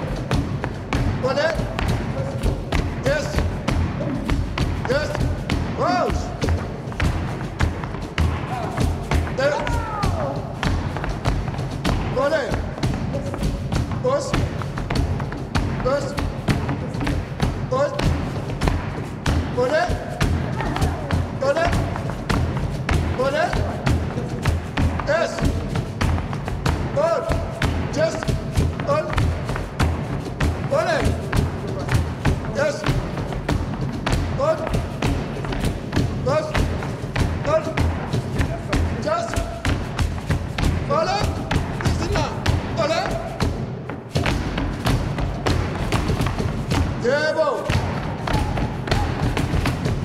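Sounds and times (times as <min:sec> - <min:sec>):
flamenco music: 0:00.0 - 0:50.0
percussive stamps and knocks: 0:00.0 - 0:50.0.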